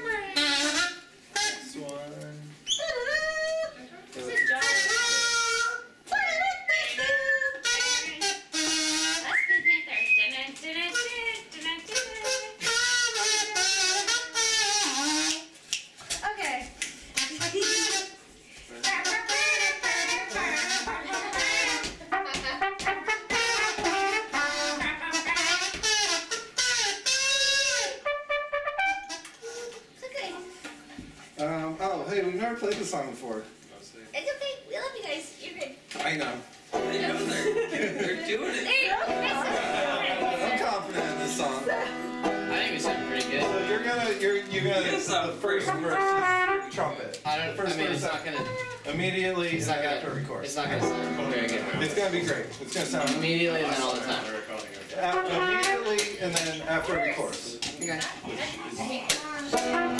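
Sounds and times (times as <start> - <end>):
trumpet playing: 0.3 - 1.8, 4.6 - 5.9, 7.6 - 9.4, 11.9 - 15.6, 17.2 - 29.6, 39.0 - 46.9, 50.8 - 51.8, 55.0 - 56.0, 59.6 - 59.9
live band playing: 4.3 - 5.9, 7.6 - 9.8, 11.8 - 15.6, 17.2 - 29.7, 36.7 - 37.6, 38.7 - 46.8, 50.6 - 53.9, 55.0 - 57.1, 59.4 - 59.9.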